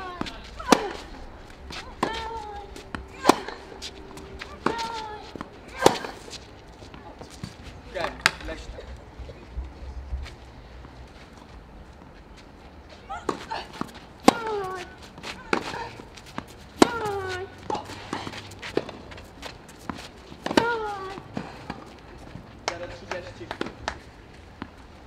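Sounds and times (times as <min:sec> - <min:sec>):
racket striking ball: 0:00.0 - 0:08.5, 0:13.1 - 0:19.1, 0:19.8 - 0:21.9.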